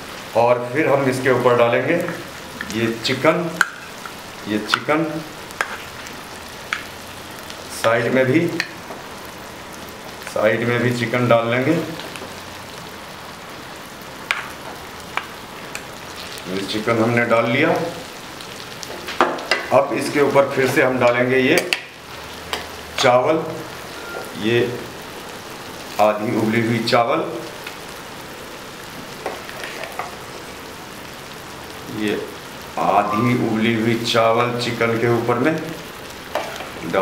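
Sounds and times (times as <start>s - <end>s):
food sizzling in pan: 0.0s - 37.0s.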